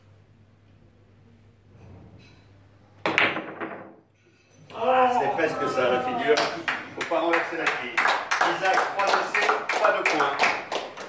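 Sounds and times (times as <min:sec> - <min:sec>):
cue striking ball: 0:03.0 - 0:04.1
billiard balls clicking: 0:03.1 - 0:04.0.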